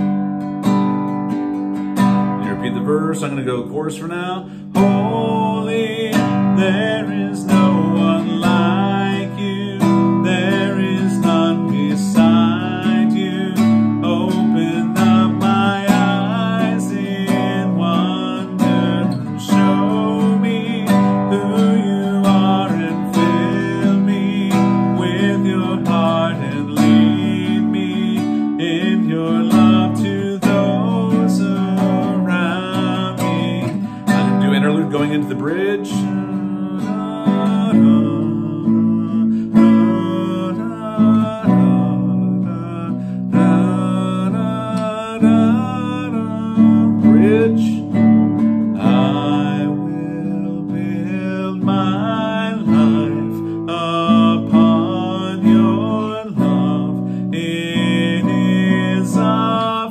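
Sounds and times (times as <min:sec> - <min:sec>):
classical guitar strumming: 0:00.0 - 0:59.9
man singing: 0:02.0 - 0:59.9.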